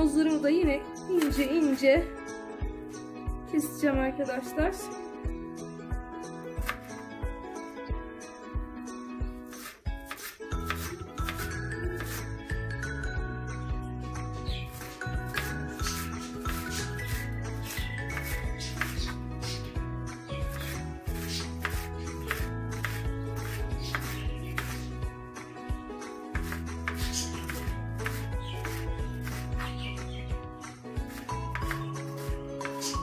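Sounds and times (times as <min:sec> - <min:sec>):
background music: 0:00.0 - 0:33.0
knife chopping on cutting board: 0:06.6 - 0:06.9, 0:09.5 - 0:12.3, 0:14.7 - 0:19.2, 0:20.5 - 0:24.9, 0:26.4 - 0:29.8, 0:31.1 - 0:33.0.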